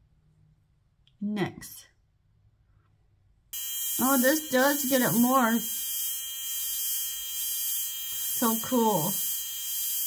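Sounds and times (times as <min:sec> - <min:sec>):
high-pitched electrical buzz: 0:03.6 - 0:10.0.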